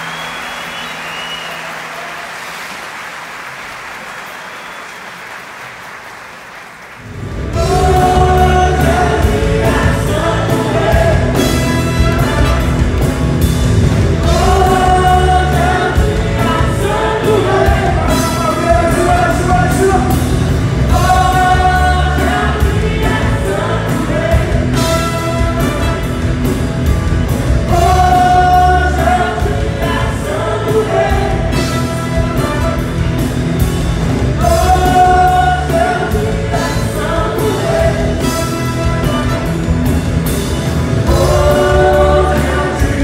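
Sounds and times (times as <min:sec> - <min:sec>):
soul band playing: 0:07.1 - 0:43.0
women singing in harmony: 0:41.1 - 0:43.0.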